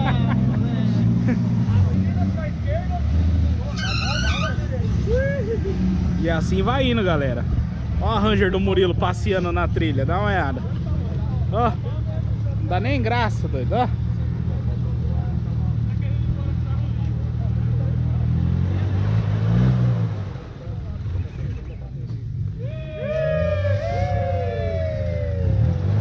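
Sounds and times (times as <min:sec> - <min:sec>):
vehicle engine running: 0:00.0 - 0:26.0.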